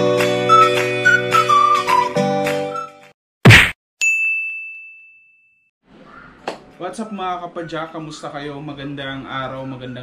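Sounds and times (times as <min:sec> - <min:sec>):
loud thwack: 0:03.4 - 0:03.8
high ringing ding: 0:04.0 - 0:05.7.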